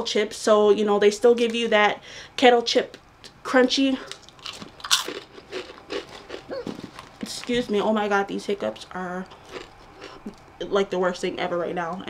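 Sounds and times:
potato chips crunching: 0:04.1 - 0:07.8, 0:09.2 - 0:10.5.

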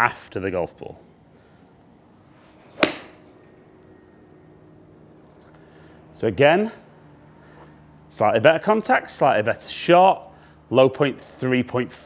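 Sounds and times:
golf club striking ball: 0:02.7 - 0:03.5.

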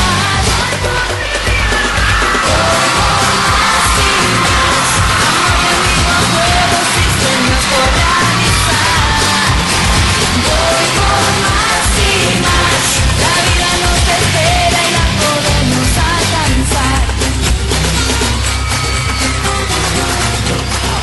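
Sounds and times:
person singing: 0:00.0 - 0:17.6
live pop-rock music: 0:00.0 - 0:21.0
people yelling: 0:01.4 - 0:15.2, 0:18.2 - 0:21.0.

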